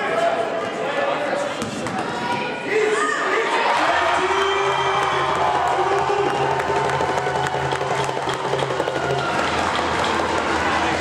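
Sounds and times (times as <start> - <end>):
spectators cheering and shouting: 1.8 - 11.0.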